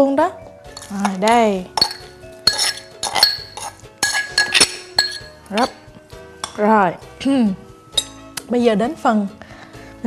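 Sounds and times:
metal spoon clinking on porcelain: 0.7s - 5.8s, 6.4s - 6.7s, 8.0s - 8.2s.

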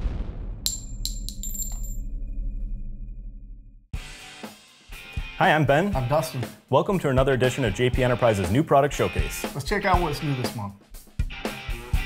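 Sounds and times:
deep hit: 0.0s - 3.8s
bright metallic clinks: 0.7s - 2.0s.

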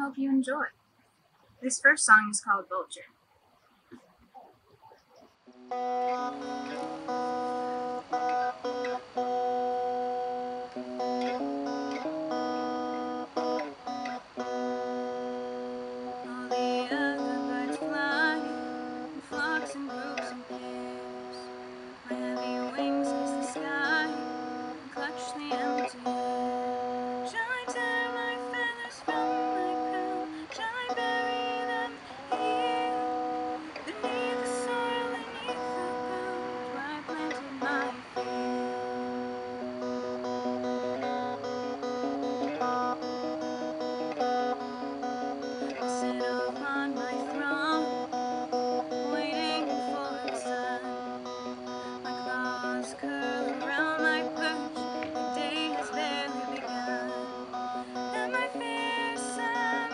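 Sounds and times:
electric guitar picking chords: 4.0s - 59.9s.

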